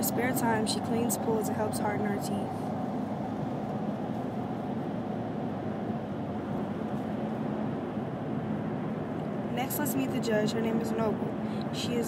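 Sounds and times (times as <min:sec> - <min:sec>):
low rushing background noise: 0:00.0 - 0:12.0.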